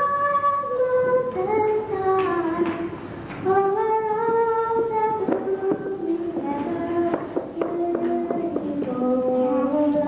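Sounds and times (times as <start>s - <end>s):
girl singing long note: 0.0s - 10.0s.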